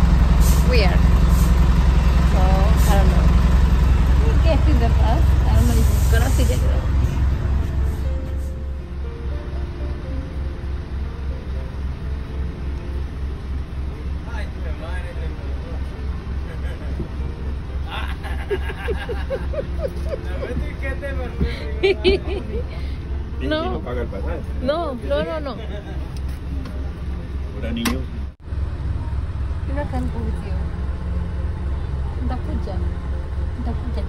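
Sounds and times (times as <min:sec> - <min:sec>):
bus engine idling: 0:00.0 - 0:34.0.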